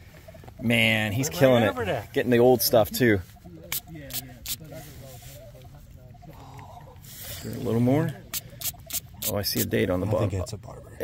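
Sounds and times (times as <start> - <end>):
faint voices: 0.1 - 9.8
spray bottle squirts: 3.7 - 4.6, 8.3 - 9.7.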